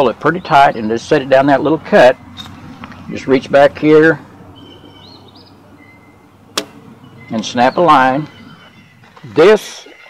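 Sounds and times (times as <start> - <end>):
bird chirping: 0.0 - 10.0.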